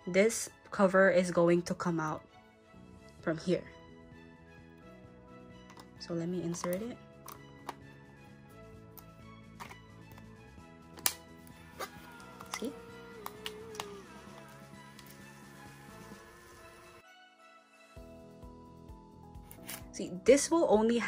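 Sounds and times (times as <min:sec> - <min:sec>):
soft background music: 0:00.0 - 0:21.0.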